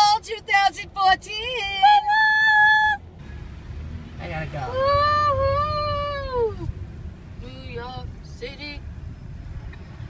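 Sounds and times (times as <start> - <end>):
road noise inside car: 0.0 - 10.0.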